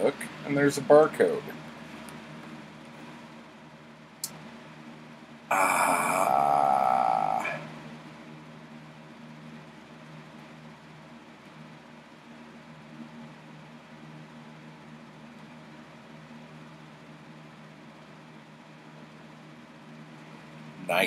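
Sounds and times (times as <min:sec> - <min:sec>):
room hum and hiss: 0:00.0 - 0:21.0.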